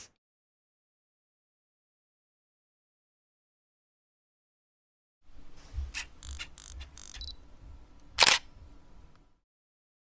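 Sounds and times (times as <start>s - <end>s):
camera shutter click: 6.0s - 7.3s, 8.2s - 8.5s.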